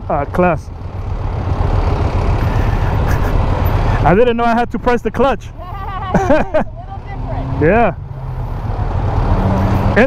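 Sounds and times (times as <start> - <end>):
motorcycles idling: 0.0 - 7.9.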